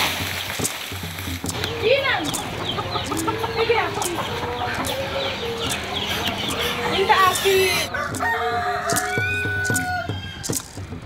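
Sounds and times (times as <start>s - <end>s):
chickens clucking and squawking: 1.5s - 10.8s.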